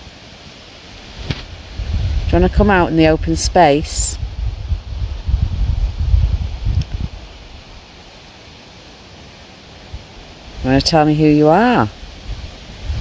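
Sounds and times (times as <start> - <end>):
wind buffeting microphone: 1.0 - 7.8, 9.9 - 13.0.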